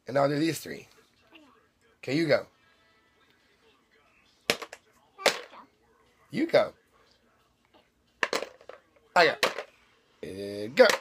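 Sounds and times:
toy blocks clattering into bucket: 8.2s - 9.7s.

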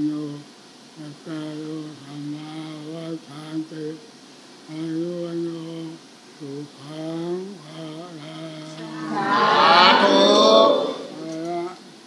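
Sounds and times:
crowd calling out together: 8.7s - 11.7s.

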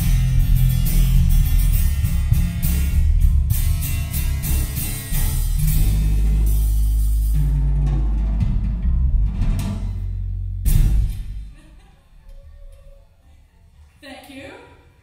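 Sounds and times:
band playing bass-heavy chord: 0.0s - 11.5s
faint room noise: 0.0s - 15.0s.

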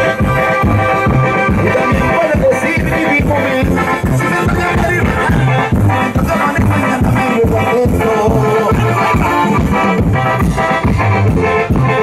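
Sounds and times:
live band dance music: 0.0s - 12.0s.

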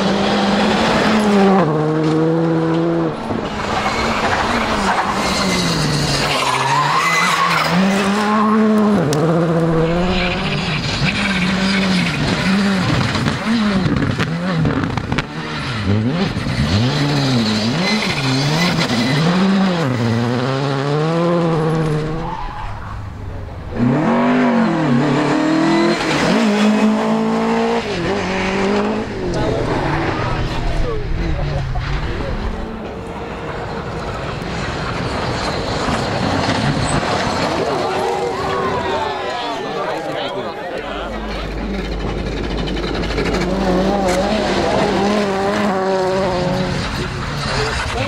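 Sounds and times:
rally car engines revving: 0.0s - 48.0s
tyres sliding in dirt: 0.6s - 48.0s.

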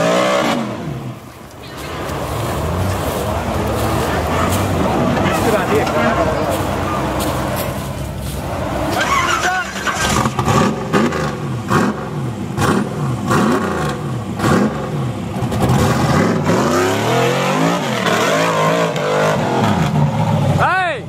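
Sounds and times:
buggy engine revving hard: 0.0s - 20.7s.

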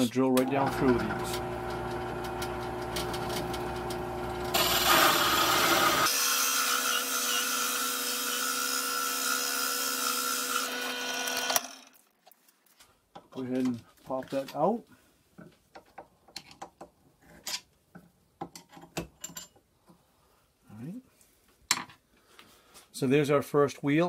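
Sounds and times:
drill press motor hum: 0.4s - 6.1s
hole saw rasping through wood: 4.5s - 11.6s.

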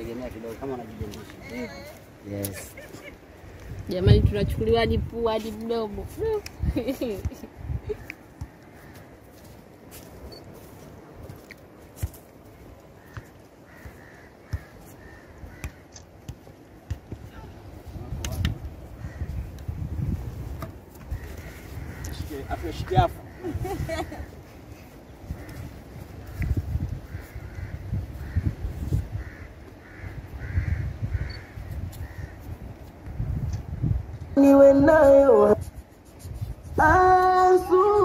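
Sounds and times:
wind rumble on microphone: 3.3s - 8.2s, 17.2s - 38.0s.

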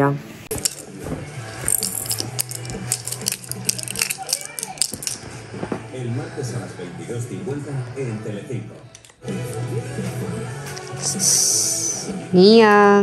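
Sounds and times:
plastic baby rattle clicking: 1.7s - 5.2s.

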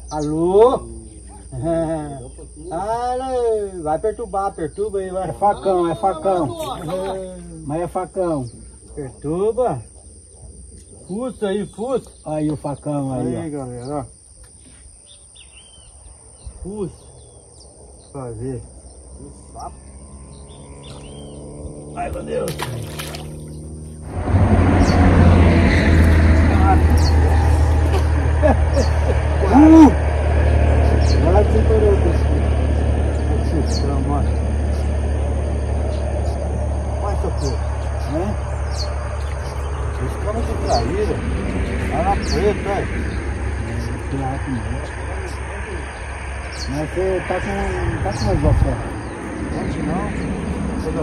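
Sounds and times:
indistinct voices talking: 0.0s - 14.2s, 24.0s - 51.0s
bird chirp: 0.0s - 51.0s
insect drone: 0.0s - 51.0s
faint high bird chirp: 14.6s - 18.2s, 18.8s - 21.6s
low hum: 15.5s - 51.0s
steady low rumble: 15.9s - 51.0s.

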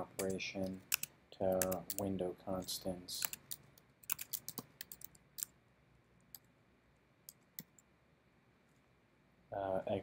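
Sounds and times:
typing on computer keyboard: 0.2s - 2.1s, 3.2s - 5.5s.

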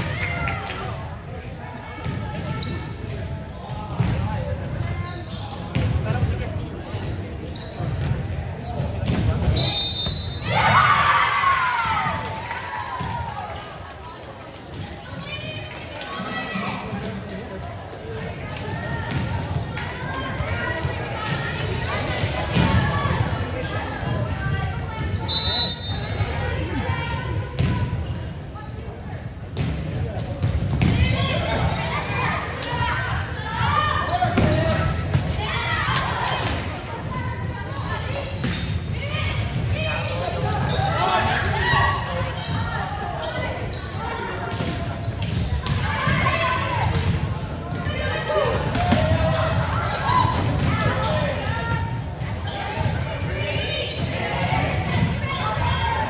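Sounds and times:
voices echoing in hall: 0.0s - 56.0s.

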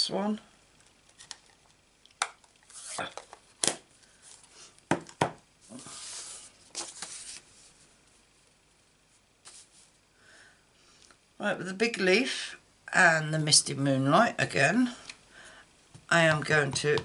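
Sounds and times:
paper sliding and rustling: 5.7s - 7.8s, 9.4s - 10.0s.

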